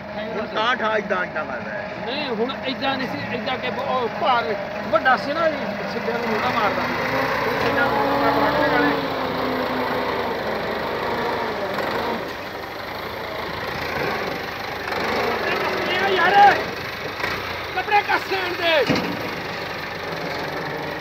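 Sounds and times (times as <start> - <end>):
tractor engine running: 0.0 - 21.0
voices: 0.0 - 21.0.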